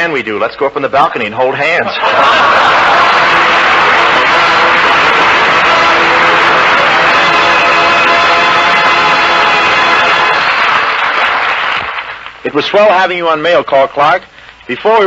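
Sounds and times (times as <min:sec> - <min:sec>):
audience applauding: 0:02.0 - 0:12.4
orchestra playing: 0:02.5 - 0:11.3.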